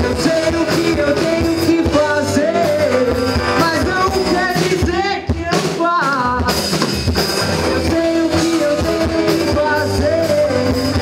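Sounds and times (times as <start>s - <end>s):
electric bass: 0.0s - 5.4s, 6.9s - 11.0s
person singing: 0.0s - 6.7s, 7.5s - 11.0s
drum kit: 0.0s - 11.0s
electric guitar: 0.0s - 11.0s.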